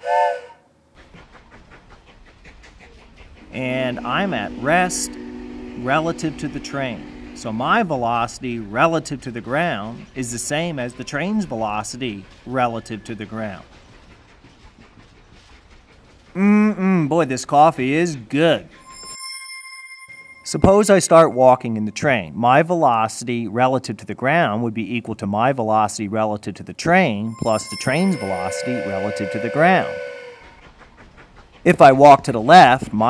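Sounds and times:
train whistle: 0:00.0 - 0:00.8, 0:03.5 - 0:09.2, 0:18.5 - 0:21.1, 0:27.3 - 0:30.8
train rolling on rails: 0:00.0 - 0:26.1, 0:26.8 - 0:33.0.

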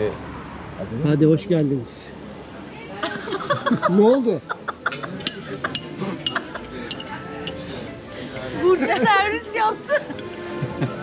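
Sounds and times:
plates and cutlery clinking: 0:04.8 - 0:07.7
background music: 0:05.2 - 0:11.0.

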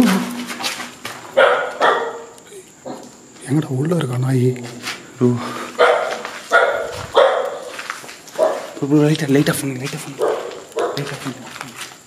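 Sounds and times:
dog barking: 0:01.4 - 0:03.0, 0:05.8 - 0:07.8, 0:08.4 - 0:08.8, 0:10.2 - 0:11.1.

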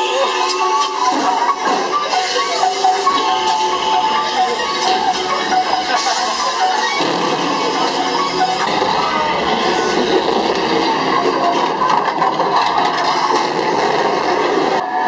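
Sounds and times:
haunted house soundtrack: 0:00.0 - 0:15.0.

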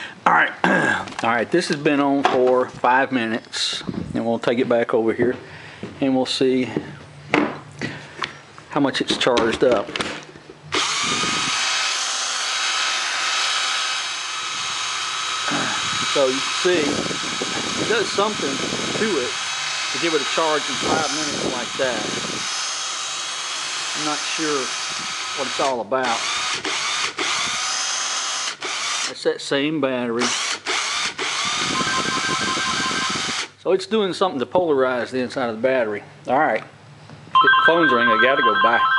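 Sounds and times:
cordless drill motor whine: 0:10.7 - 0:29.1, 0:30.2 - 0:33.5.

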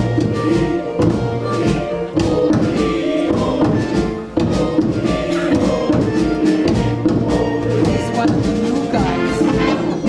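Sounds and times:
instrumental accompaniment: 0:00.0 - 0:10.0
men's choir singing: 0:00.0 - 0:10.0.

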